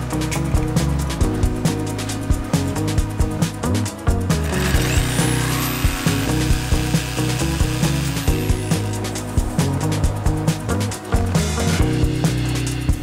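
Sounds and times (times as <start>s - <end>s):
background music with steady beat: 0.0s - 13.0s
power saw cutting plank: 4.3s - 9.0s.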